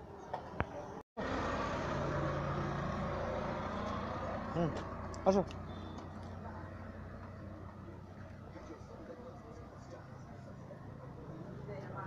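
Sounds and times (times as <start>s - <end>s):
vehicle engine hum: 0.7s - 12.0s.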